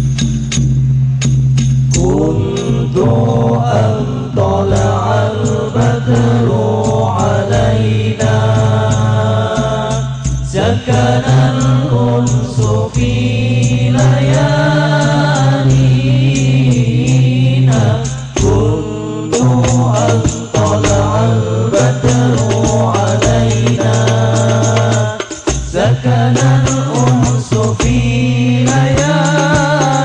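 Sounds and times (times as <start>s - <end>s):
men chanting together: 2.0s - 30.0s
hand-struck frame drums: 18.0s - 30.0s.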